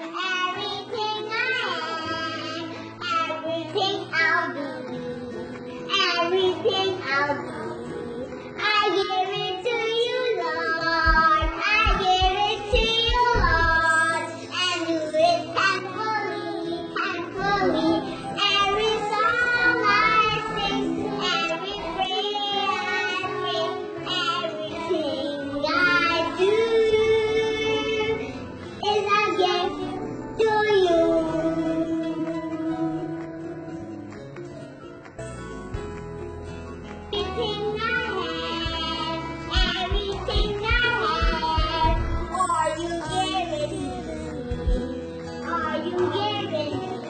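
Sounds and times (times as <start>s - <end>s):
girl singing: 0.0s - 33.6s, 37.1s - 47.0s
musical backing: 0.0s - 47.0s
low thumps: 10.9s - 14.0s, 39.5s - 42.3s, 44.5s - 45.0s.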